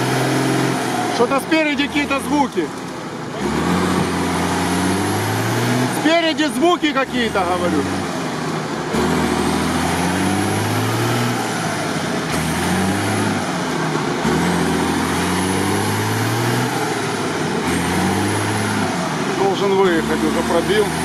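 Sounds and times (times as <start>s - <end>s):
truck engine revving: 0.0s - 21.0s.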